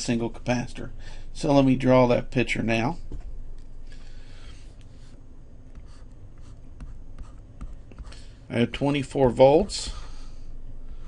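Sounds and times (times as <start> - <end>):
stylus scratching on tablet screen: 4.9 - 8.3.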